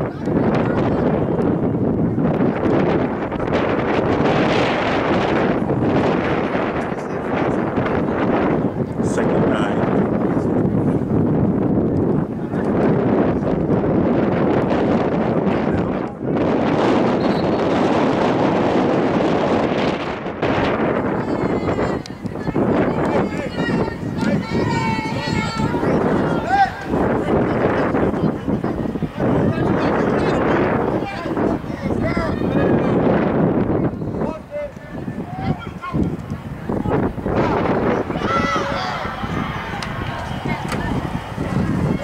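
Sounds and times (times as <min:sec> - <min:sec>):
wind on microphone: 0:00.0 - 0:42.0
indistinct voices: 0:20.0 - 0:42.0.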